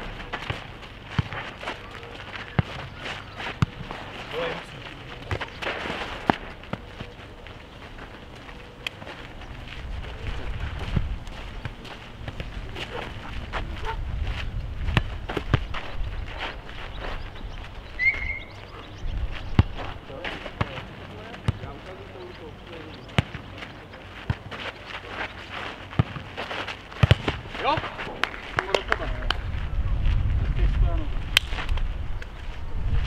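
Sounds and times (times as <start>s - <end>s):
players calling: 0.0s - 10.6s, 15.2s - 29.5s.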